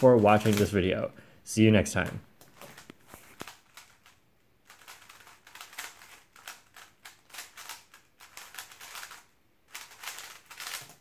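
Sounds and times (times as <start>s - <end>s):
speedcube turning clicks: 2.8s - 11.0s.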